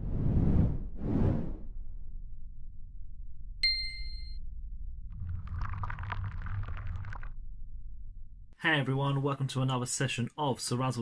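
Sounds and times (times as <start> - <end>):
low rumble: 0.0 - 8.6
bright ding: 3.6 - 4.4.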